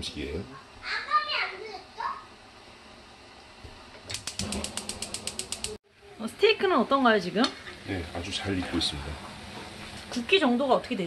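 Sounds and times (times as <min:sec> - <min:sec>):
rapid mechanical clicks: 0:04.1 - 0:05.8.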